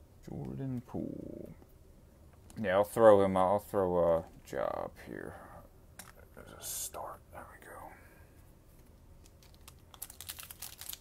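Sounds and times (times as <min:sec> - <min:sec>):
plastic wrapper crinkling: 0:09.2 - 0:11.0.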